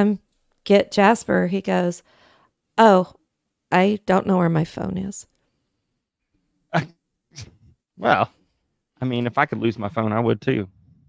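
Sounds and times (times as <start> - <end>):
person saying uh: 6.8 - 8.3.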